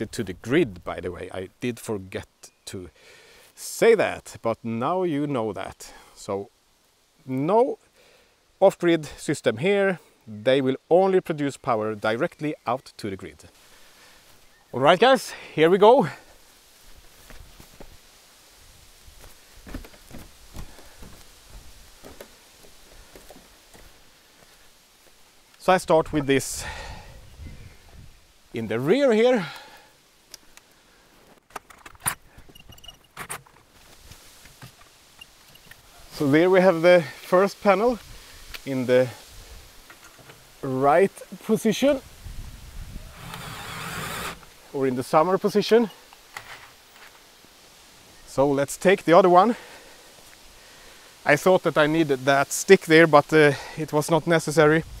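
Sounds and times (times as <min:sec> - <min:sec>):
low steady hush: 0:00.0 - 0:31.4, 0:33.8 - 0:55.0
faint ticks and rustles: 0:11.3 - 0:26.3, 0:29.4 - 0:42.2, 0:45.8 - 0:54.8
faint rustling: 0:16.1 - 0:26.4
footsteps on rock: 0:17.0 - 0:18.0, 0:19.1 - 0:25.2.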